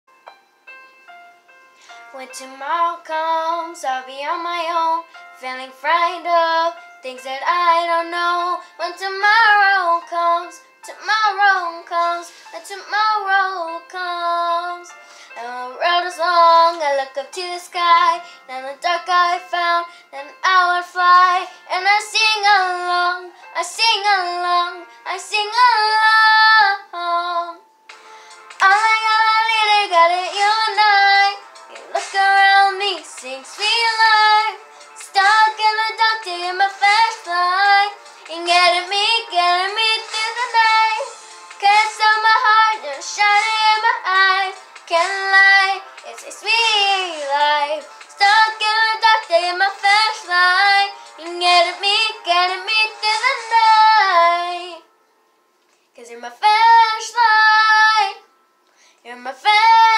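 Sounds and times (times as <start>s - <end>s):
girl singing unaccompanied: 2.1s - 27.6s, 28.5s - 54.9s, 55.9s - 58.3s, 59.0s - 59.9s.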